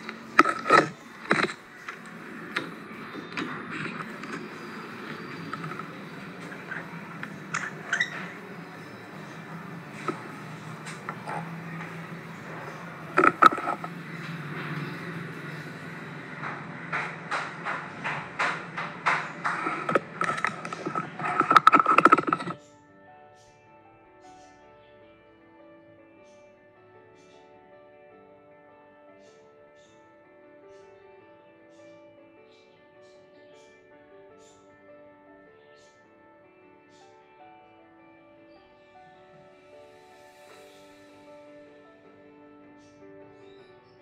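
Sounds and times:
metallic clicks and knocks: 0.0s - 22.6s
soft music: 0.0s - 44.0s.

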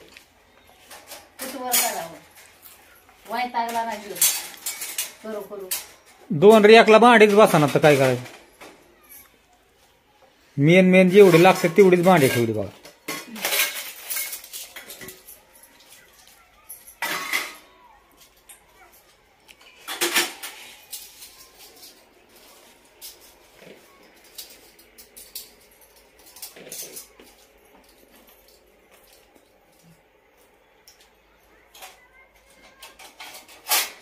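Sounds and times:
metal utensils clinking and clattering: 0.0s - 9.4s, 10.8s - 34.0s.

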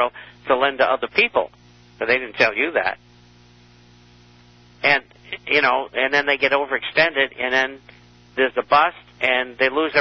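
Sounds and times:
man speaking: 0.0s - 3.0s, 4.8s - 10.0s
faint electrical hum: 0.0s - 10.0s.

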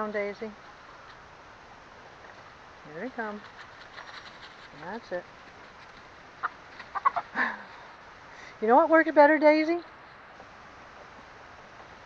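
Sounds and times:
chickens clucking: 3.4s - 8.1s.

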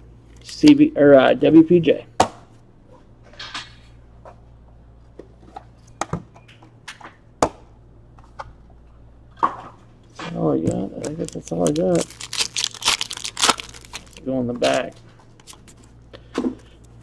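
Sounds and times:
low steady hum: 0.0s - 17.0s.

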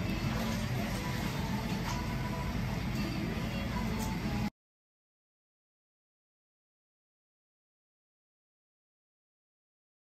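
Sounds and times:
faint music: 0.0s - 4.5s
restaurant room noise rumble: 0.0s - 4.5s.

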